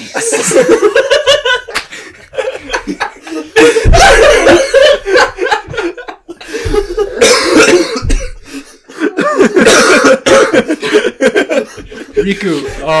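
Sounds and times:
people laughing hard: 0.0s - 13.0s
people coughing: 3.3s - 12.8s.

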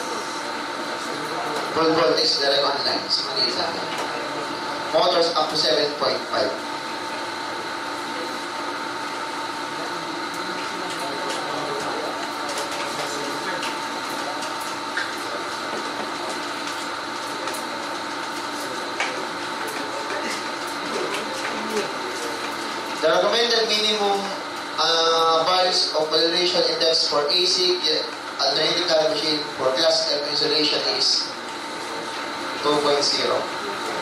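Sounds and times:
electrical hum: 0.0s - 34.0s.

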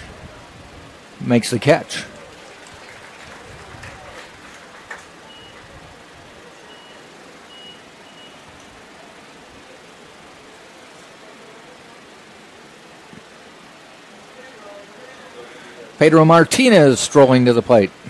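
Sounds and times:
low background hum: 0.0s - 18.0s
short high-pitched beeps: 6.7s - 8.5s.

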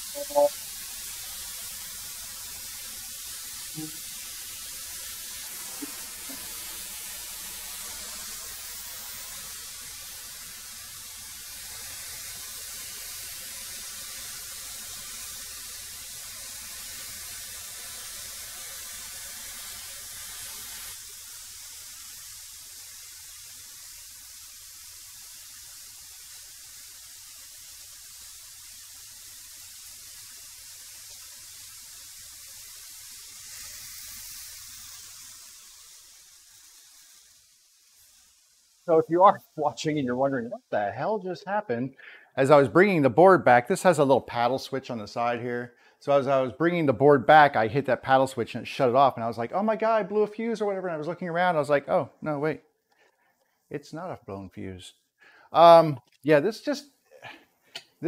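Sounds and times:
steady hiss: 0.0s - 58.0s.

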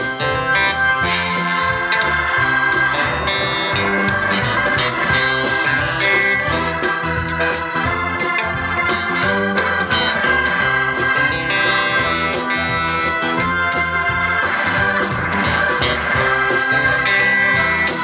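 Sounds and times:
electric organ: 0.0s - 18.0s
rock drums and bass: 0.0s - 18.0s.

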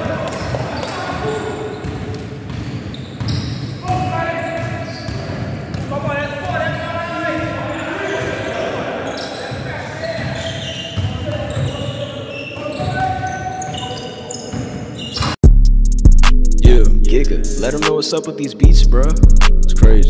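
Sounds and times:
players' voices and calls: 0.0s - 2.4s, 3.3s - 15.3s.

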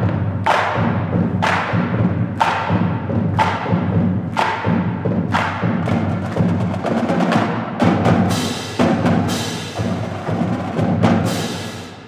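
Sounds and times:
marching drumline playing: 0.0s - 12.0s.

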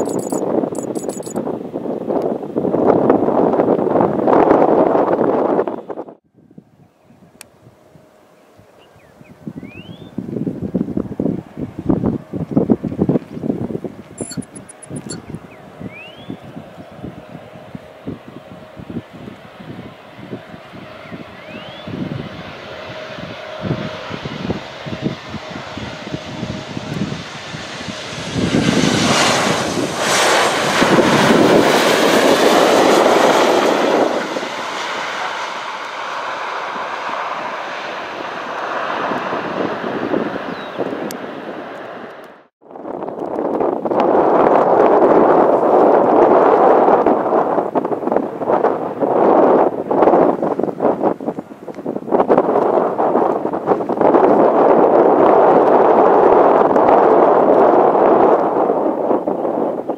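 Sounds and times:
jet airliner landing: 0.0s - 6.0s, 10.2s - 42.4s
wind buffeting microphone: 0.0s - 59.9s.

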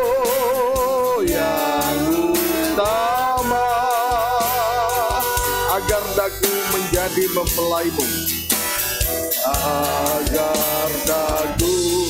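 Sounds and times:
man singing with vibrato: 0.0s - 8.2s, 9.4s - 12.0s
instrumental accompaniment: 0.0s - 12.0s.

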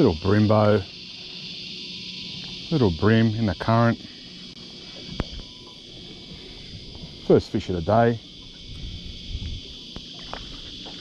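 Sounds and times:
high-pitched insect drone: 0.0s - 11.0s
wind rumble on microphone: 5.0s - 11.0s.

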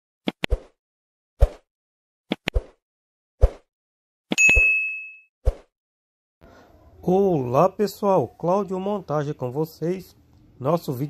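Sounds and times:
notification bell ding: 4.4s - 5.3s.

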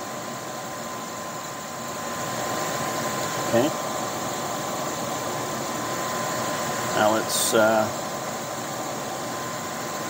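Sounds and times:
high whine: 0.0s - 10.0s
machinery rushing hum: 0.0s - 10.0s.

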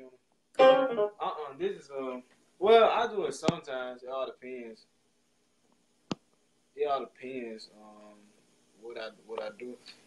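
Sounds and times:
voice: 0.0s - 4.8s, 6.8s - 8.2s, 8.8s - 10.0s
keyboard playing piano notes: 0.6s - 1.3s
loud piano chord: 0.6s - 1.3s.

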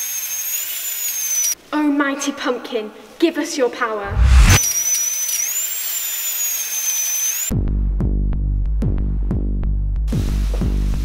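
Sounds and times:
dentist's drill whine: 0.0s - 1.6s, 4.2s - 7.5s
music with deep bass beat: 7.6s - 11.0s.

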